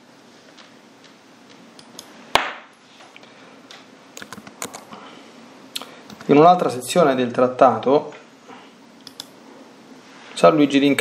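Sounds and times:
faint room hiss: 0.0s - 11.0s
sharp click: 9.0s - 9.3s.

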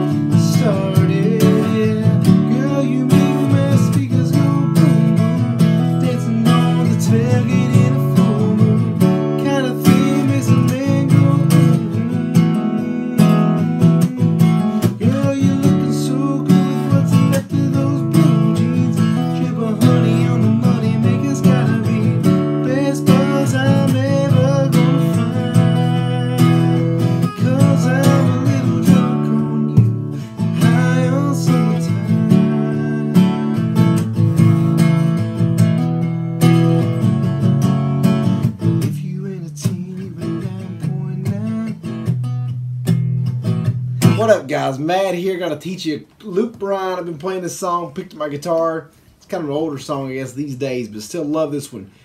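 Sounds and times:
man singing: 0.0s - 35.2s, 38.8s - 42.1s, 44.0s - 48.8s
acoustic guitar strumming: 0.0s - 49.5s.

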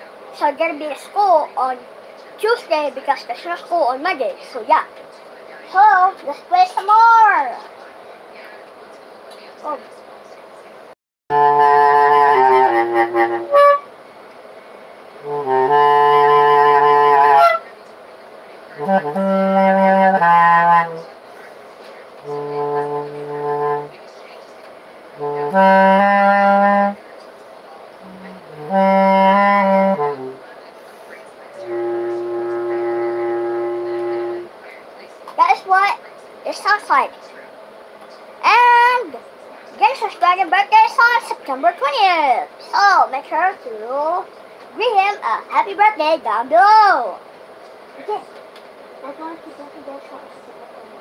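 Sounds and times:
bass clarinet low notes: 11.3s - 13.9s, 15.2s - 17.6s, 18.8s - 21.1s, 22.2s - 23.9s, 25.2s - 27.0s, 28.0s - 30.4s, 31.6s - 34.5s.

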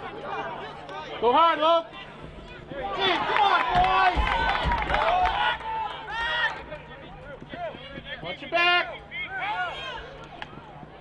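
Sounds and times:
loud shout: 2.8s - 6.7s, 8.6s - 10.7s.

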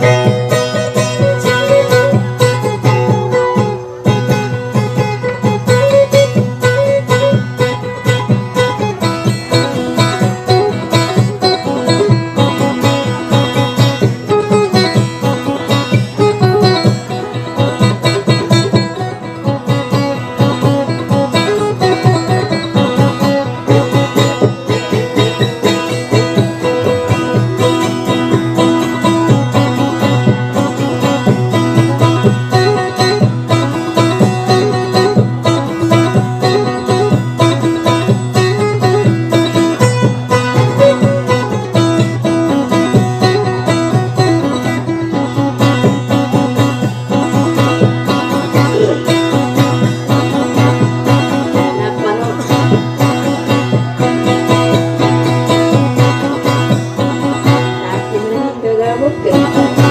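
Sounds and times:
acoustic guitar plucking: 0.0s - 59.9s.

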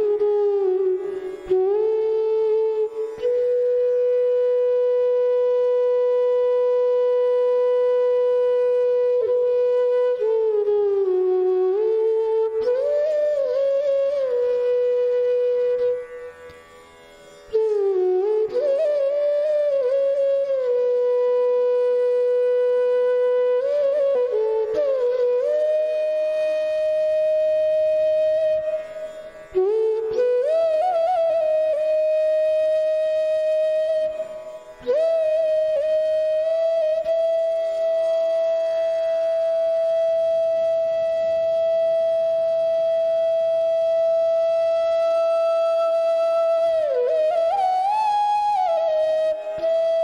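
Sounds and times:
flute holding long note: 0.0s - 50.0s.

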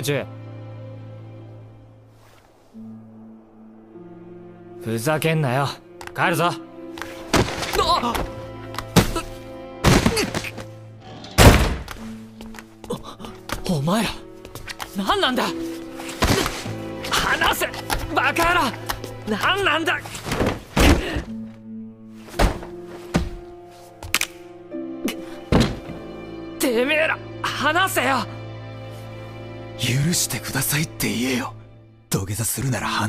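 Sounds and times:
background music: 0.0s - 33.0s
punches thudding on body: 9.8s - 10.6s, 11.4s - 12.0s.

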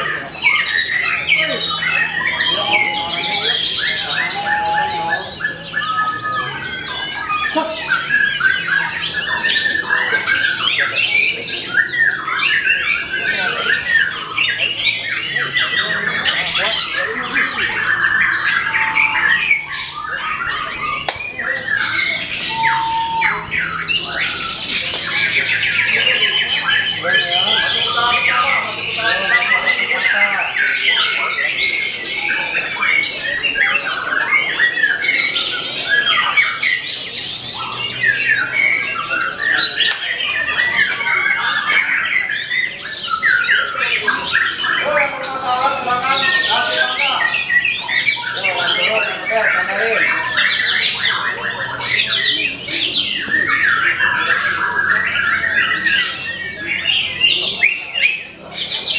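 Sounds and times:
songbirds chirping and trilling: 0.0s - 58.9s.

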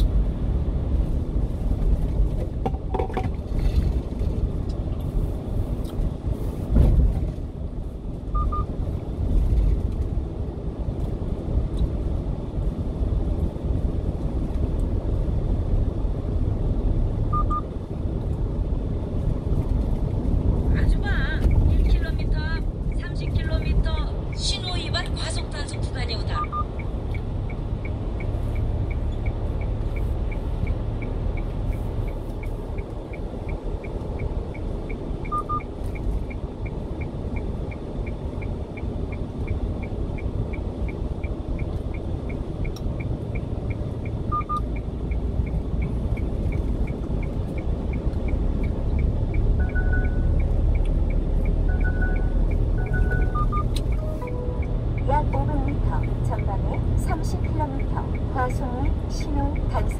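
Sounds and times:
truck engine and tyre rumble: 0.0s - 59.9s
short electronic beeps: 8.4s - 8.7s, 17.3s - 17.7s, 26.2s - 27.2s, 35.2s - 36.1s, 44.3s - 44.8s, 48.2s - 50.8s, 51.6s - 56.2s
faint repeating tick: 26.7s - 54.0s.

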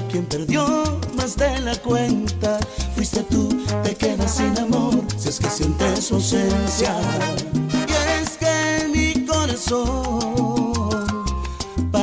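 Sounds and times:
bass line: 0.0s - 12.0s
salsa band playing: 0.0s - 12.0s.

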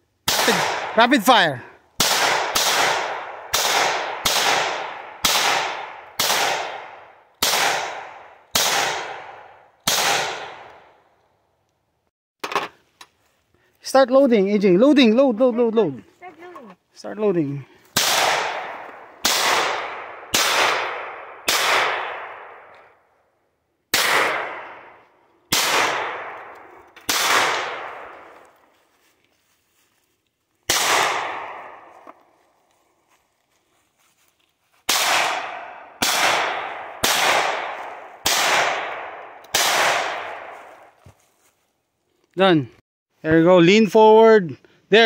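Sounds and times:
pistol shots: 0.2s - 1.0s, 2.0s - 10.9s, 18.0s - 22.7s, 23.9s - 28.4s, 30.7s - 32.0s, 34.9s - 40.6s.

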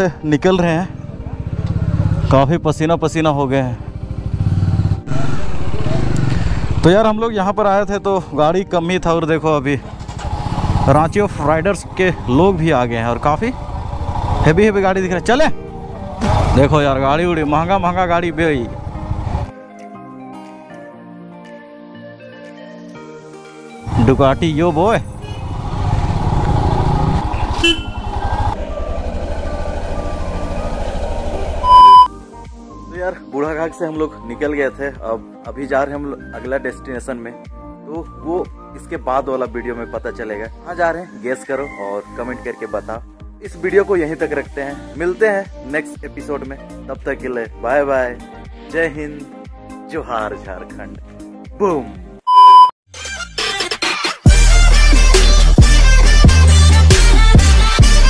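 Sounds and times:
motorcycle engine running: 1.0s - 2.4s, 3.8s - 6.9s, 9.8s - 17.5s, 18.4s - 19.5s, 25.1s - 31.6s
electronic beep: 31.6s - 32.1s, 52.3s - 52.7s.

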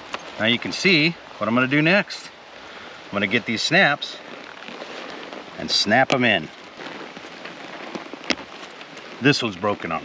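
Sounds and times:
background hiss: 0.0s - 10.0s
leather being handled: 4.2s - 9.9s.

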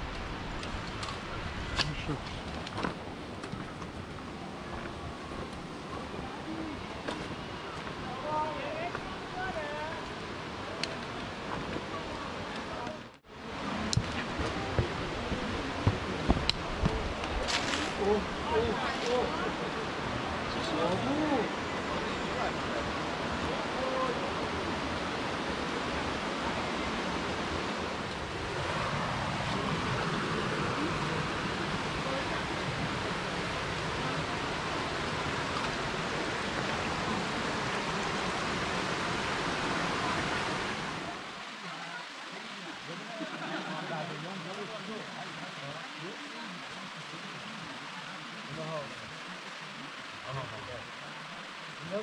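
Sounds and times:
stream running over rocks: 0.0s - 52.0s
faint distant voices: 1.1s - 52.0s.

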